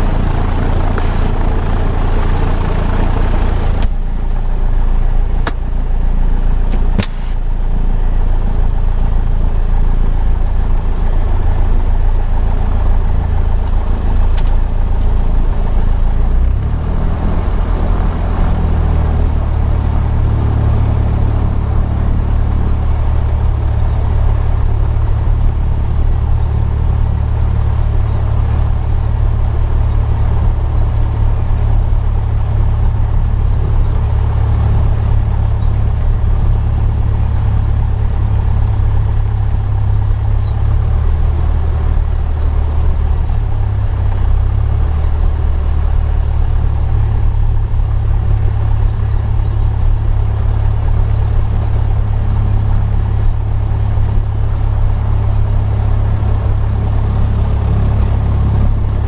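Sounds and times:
propeller aircraft engine idling: 0.0 - 59.0.

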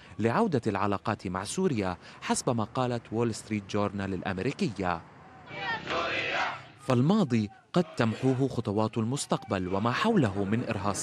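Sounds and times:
narration: 0.0 - 11.0
crowd shouting and chanting: 5.2 - 8.7, 9.4 - 10.6.

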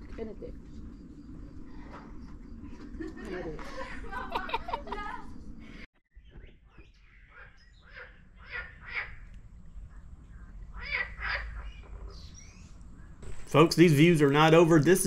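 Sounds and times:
steady low rumble: 0.0 - 5.9
short bird calls: 5.7 - 9.3.

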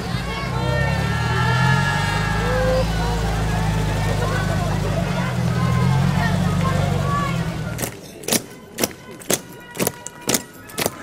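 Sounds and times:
jeep engine rumble: 0.0 - 8.1
faint voices: 0.0 - 11.0.

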